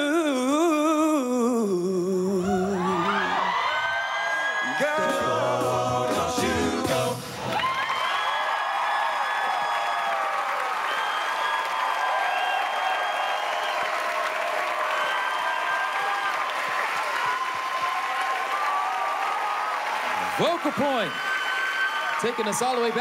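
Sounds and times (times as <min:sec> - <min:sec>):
audience cheering and whooping: 0:02.4 - 0:05.6, 0:07.2 - 0:23.0
audience clapping: 0:07.4 - 0:23.0.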